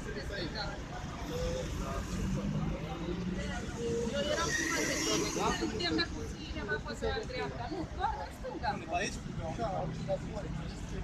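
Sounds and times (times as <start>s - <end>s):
street traffic rumble: 0.0s - 11.0s
men talking indistinctly: 7.1s - 11.0s.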